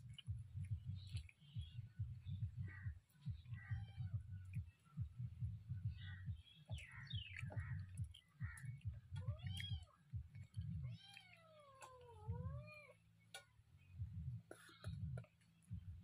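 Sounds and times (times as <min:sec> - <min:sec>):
close-up chewing: 0:00.0 - 0:05.6, 0:06.2 - 0:12.5
cat meowing: 0:03.6 - 0:04.3, 0:09.1 - 0:13.0.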